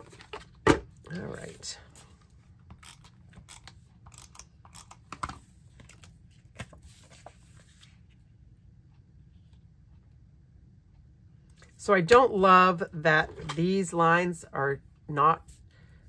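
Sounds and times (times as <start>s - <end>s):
paper rustling: 5.7s - 8.2s.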